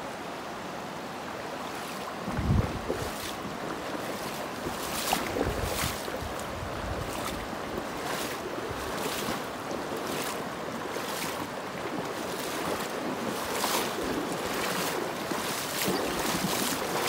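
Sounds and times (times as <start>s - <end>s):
water rushing over rocks: 1.1s - 17.0s
wind buffeting microphone: 2.2s - 3.2s, 4.6s - 9.0s.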